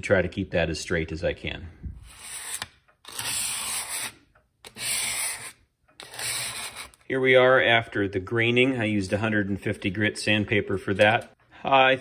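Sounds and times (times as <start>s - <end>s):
sandpaper rubbing on metal: 2.0s - 7.0s.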